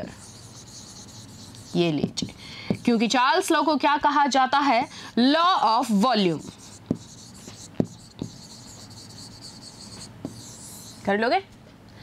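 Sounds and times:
chalk scratching on chalkboard: 0.0s - 3.3s, 6.2s - 11.2s
chalk tapping on chalkboard: 0.2s - 3.0s, 6.4s - 11.0s.

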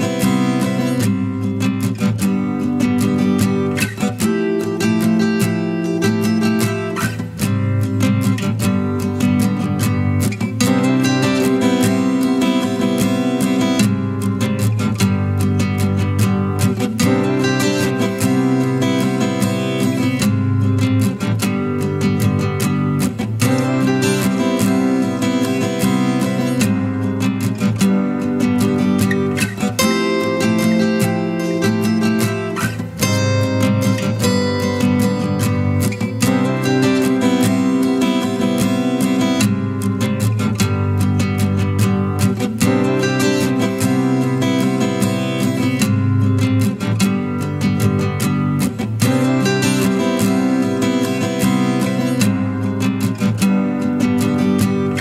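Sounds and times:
strummed acoustic guitar: 0.0s - 55.0s.

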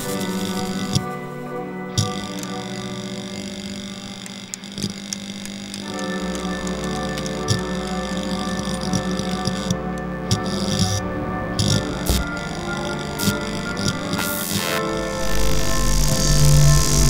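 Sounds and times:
layered drone film music: 0.0s - 17.0s
deep low hum: 10.2s - 14.0s, 15.1s - 17.0s.

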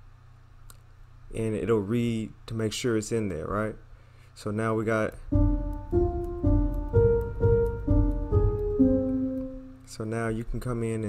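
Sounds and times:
felt piano melody with chords: 5.3s - 9.8s.

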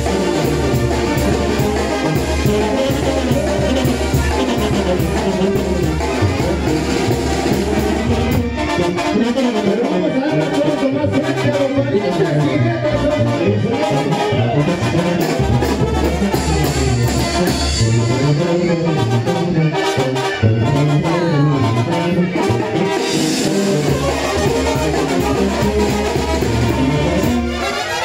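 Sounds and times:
brass band music: 0.0s - 28.0s.

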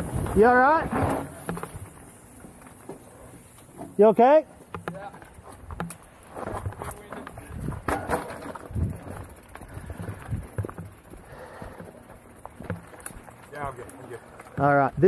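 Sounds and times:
bike rattling and knocking: 0.0s - 15.0s
tyres crunching over dirt: 0.0s - 15.0s.

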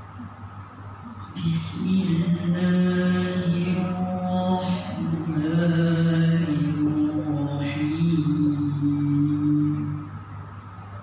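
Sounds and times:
low room hum: 0.0s - 11.0s
boy reciting long held note: 1.3s - 10.3s.

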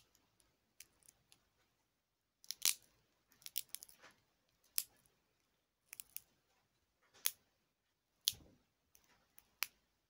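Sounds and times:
crackling snaps and clicks: 2.4s - 5.1s.

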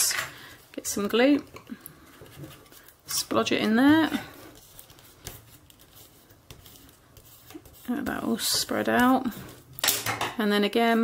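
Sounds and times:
bone folder rustling on paper: 2.0s - 9.6s.

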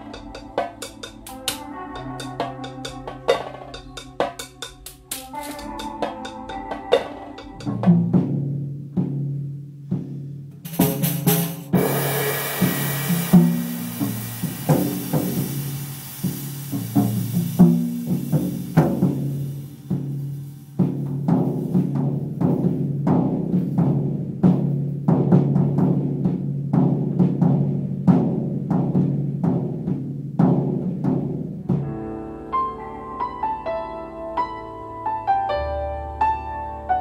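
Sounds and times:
tom and kick drum hits: 9.9s - 19.3s
cymbal wash: 10.7s - 21.0s.

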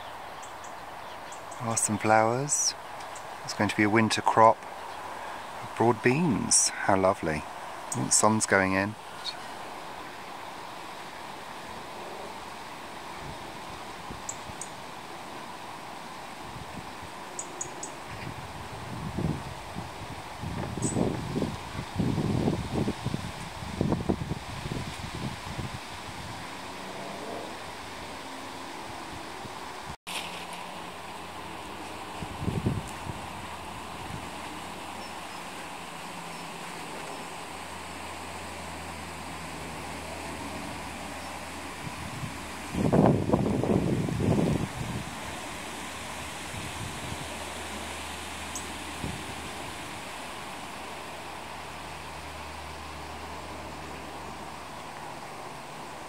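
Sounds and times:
outdoor hiss: 0.0s - 56.0s
wind buffeting microphone: 18.0s - 27.9s, 32.1s - 34.5s, 41.7s - 47.7s.

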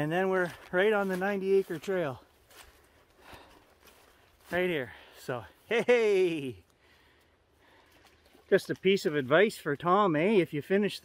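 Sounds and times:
man speaking: 0.0s - 2.3s, 4.4s - 6.6s, 8.4s - 11.0s
footsteps in grass: 0.0s - 11.0s.

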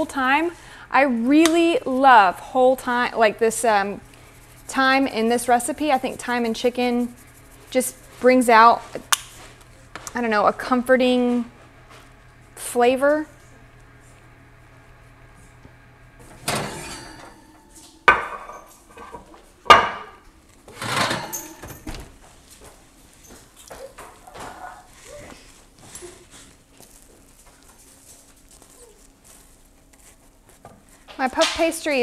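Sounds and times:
utensils clattering: 16.2s - 19.3s, 19.9s - 22.0s.

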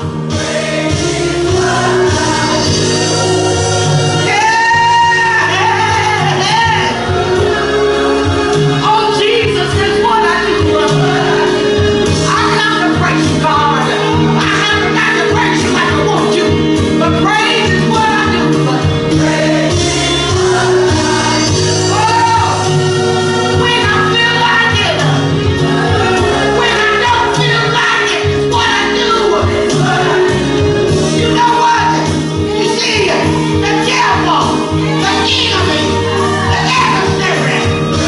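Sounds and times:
bass and keyboard accompaniment: 0.0s - 38.0s
gospel singing: 0.0s - 38.0s.

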